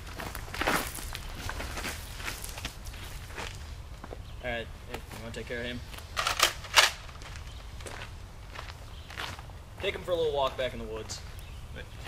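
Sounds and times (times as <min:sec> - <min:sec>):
footsteps crunching on gravel: 0:00.0 - 0:06.1, 0:06.9 - 0:12.0.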